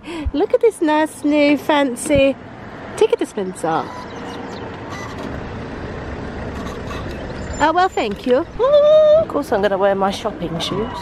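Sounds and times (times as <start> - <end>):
low rumble of road vehicles: 0.0 - 11.0.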